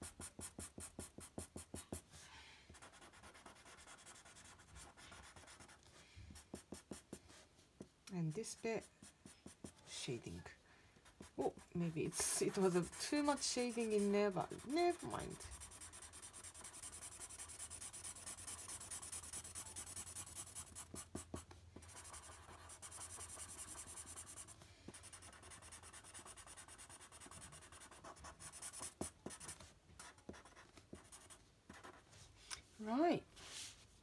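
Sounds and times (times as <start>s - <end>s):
marker scribbling on paper: 0.0s - 2.0s, 2.7s - 7.4s, 8.3s - 10.1s, 11.0s - 32.1s.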